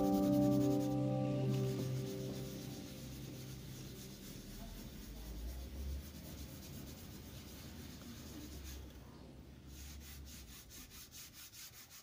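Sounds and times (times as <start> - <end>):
pad rubbing on paper: 1.6 - 8.9.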